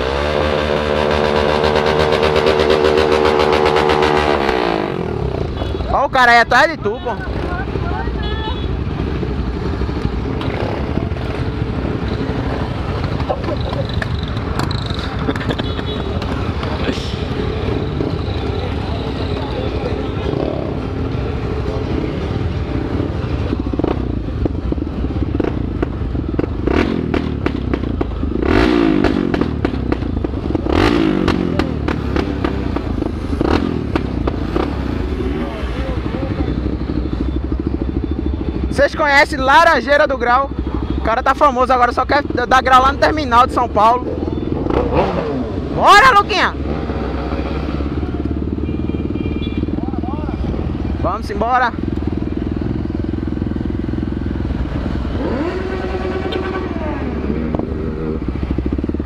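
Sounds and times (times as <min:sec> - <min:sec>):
motorcycle engines rumbling: 0:00.0 - 0:59.0.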